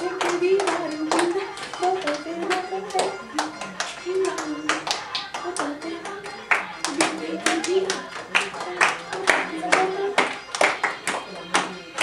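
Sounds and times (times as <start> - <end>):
group hand clapping rhythm: 0.0 - 12.0
pitched tune: 0.0 - 12.0.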